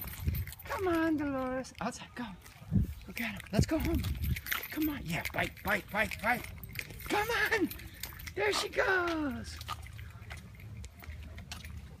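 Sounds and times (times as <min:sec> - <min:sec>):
small jingles: 0:00.0 - 0:12.0.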